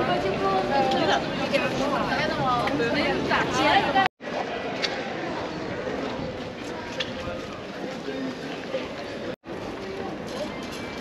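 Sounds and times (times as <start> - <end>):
passers-by talking: 0.0 - 11.0.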